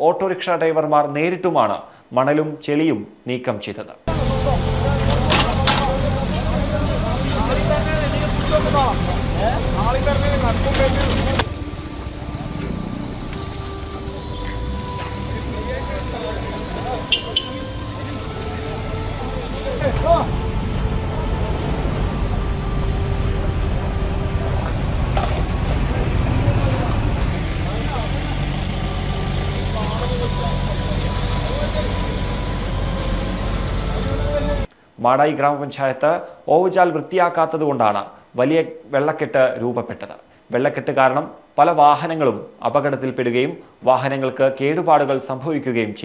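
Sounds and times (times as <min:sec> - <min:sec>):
men's voices: 0:04.0 - 0:12.0, 0:12.6 - 0:22.4, 0:25.6 - 0:35.4
excavator diesel engine running: 0:04.1 - 0:34.7
faint whining tones: 0:04.1 - 0:34.7.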